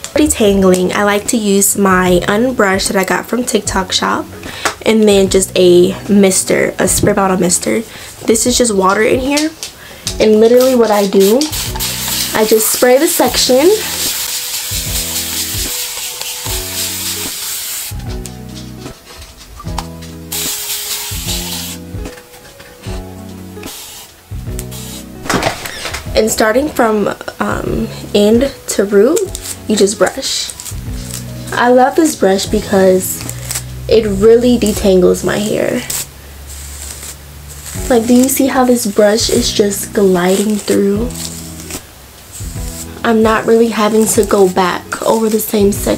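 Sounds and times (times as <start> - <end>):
background music with bass notes: 0.0 - 7.8, 8.4 - 45.9
rustling of hair being handled: 8.8 - 24.0, 35.7 - 45.9
spray bottle hissing water: 10.4 - 22.1, 22.8 - 25.8, 29.2 - 31.6, 35.3 - 45.6.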